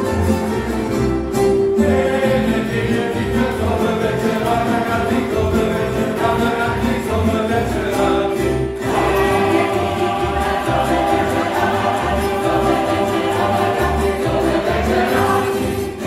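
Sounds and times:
plucked strings: 0.0s - 16.0s
group of voices singing: 1.7s - 16.0s
upright bass pulsing: 1.8s - 16.0s.

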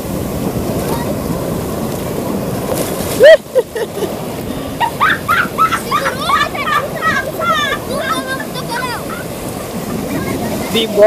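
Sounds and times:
surf washing and sloshing: 0.0s - 11.0s
people shouting: 4.8s - 9.3s.

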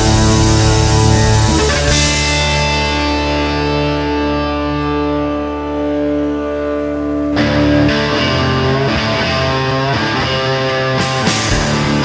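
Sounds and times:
electric guitars sustained chord: 0.0s - 12.0s.

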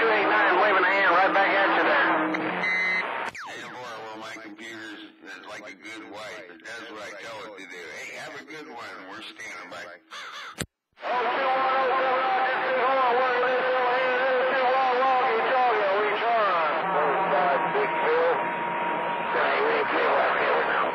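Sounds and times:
garbled radio voices and whistles: 0.0s - 18.6s, 19.2s - 20.9s
steady radio whistle: 0.4s - 8.1s, 13.3s - 20.9s.

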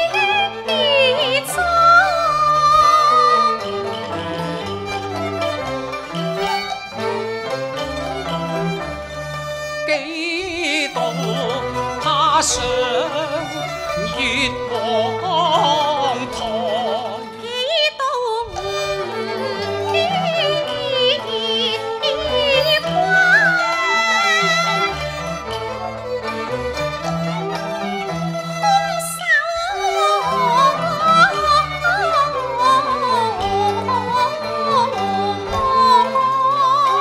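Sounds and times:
woman singing opera: 0.0s - 4.9s, 9.8s - 25.1s, 28.7s - 37.0s
bowed strings melody: 0.0s - 37.0s
plucked strings: 0.0s - 37.0s
traditional instrumental ensemble: 0.0s - 37.0s.

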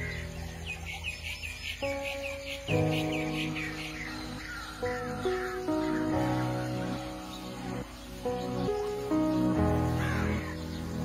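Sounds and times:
slow held chords music: 0.0s - 11.0s.

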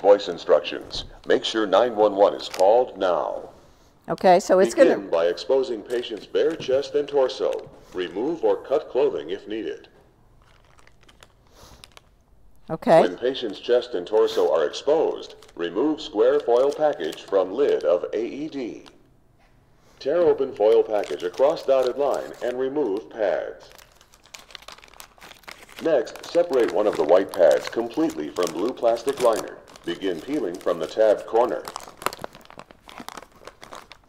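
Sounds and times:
packaging crinkle: 0.0s - 3.4s, 5.4s - 9.8s, 10.4s - 12.2s, 13.0s - 19.1s, 20.0s - 34.0s.

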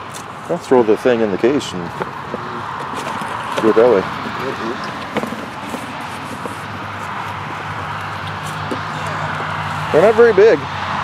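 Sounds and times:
outdoor background: 0.0s - 11.0s
fabric bag handling noise: 1.9s - 10.2s.

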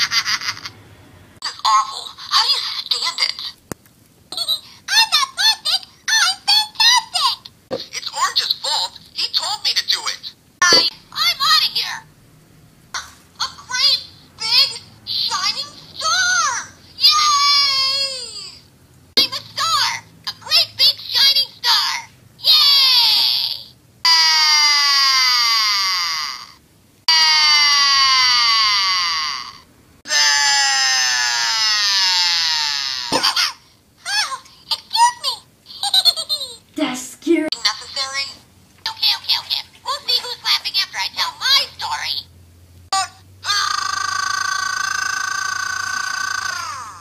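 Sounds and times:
toy high-pitched cartoon voice: 1.4s - 3.6s, 4.3s - 12.0s, 13.0s - 18.6s, 19.2s - 27.2s, 42.9s - 47.0s
toy cartoon screams: 15.3s - 18.6s, 22.4s - 33.6s, 43.0s - 47.0s.

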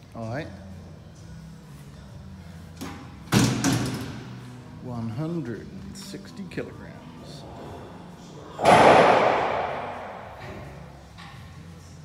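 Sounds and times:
leg press machine slam: 8.6s - 10.8s.

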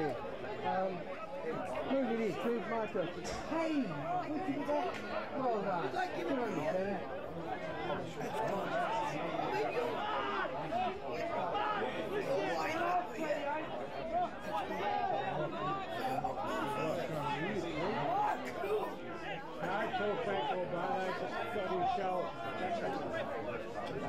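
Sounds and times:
indistinct chatter of people: 0.0s - 24.0s.

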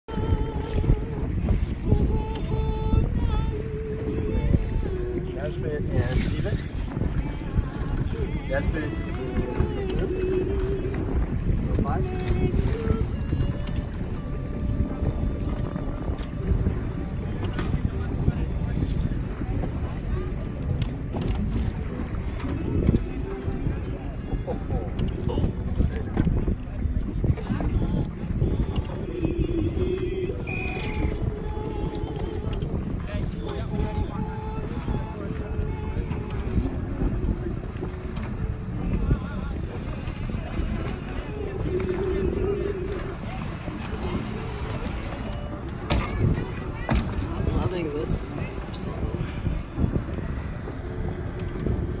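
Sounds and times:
outboard motorboat engine: 0.0s - 52.0s
wind buffeting microphone: 0.0s - 52.0s
indistinct voices: 0.1s - 52.0s.

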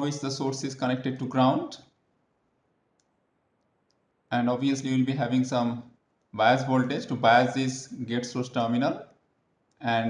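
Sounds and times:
small faint clicks: 2.7s - 4.2s, 9.0s - 9.8s.

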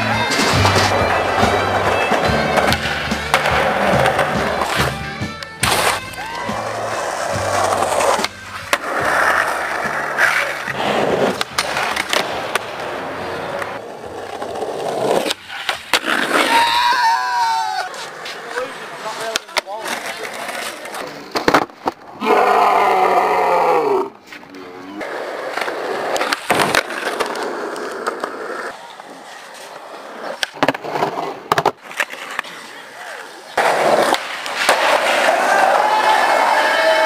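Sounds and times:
skaters shouting: 0.0s - 21.3s, 22.1s - 25.2s, 32.0s - 37.0s
skateboard wheels rolling on concrete: 0.0s - 37.0s
skateboard tail pops clacking: 30.3s - 32.5s.

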